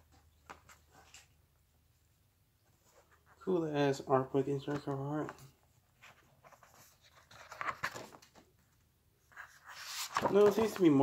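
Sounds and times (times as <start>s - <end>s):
book pages rustling: 0.0s - 1.4s, 4.6s - 11.0s.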